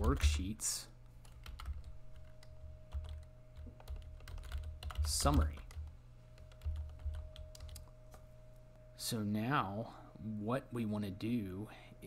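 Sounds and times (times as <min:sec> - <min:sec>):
typing on computer keyboard: 0:01.2 - 0:07.9.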